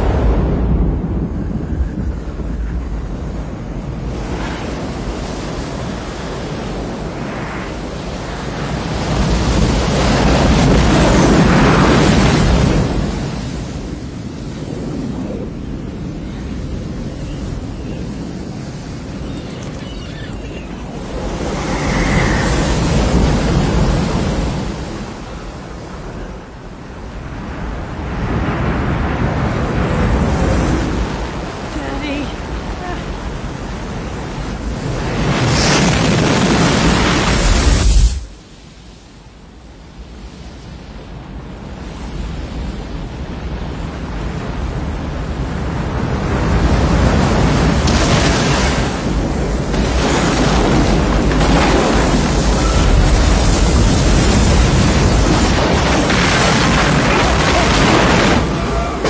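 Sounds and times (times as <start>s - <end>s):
low rumble: 0.0s - 4.1s
wind rushing: 0.0s - 38.5s
surging water: 0.0s - 59.0s.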